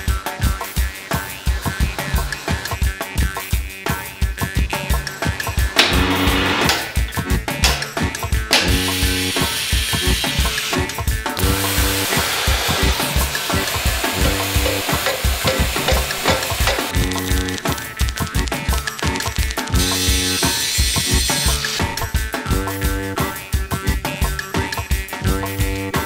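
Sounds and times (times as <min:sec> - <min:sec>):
background music with steady beat: 0:00.0 - 0:26.0
gas burner flame hissing: 0:00.3 - 0:03.4, 0:04.7 - 0:22.1.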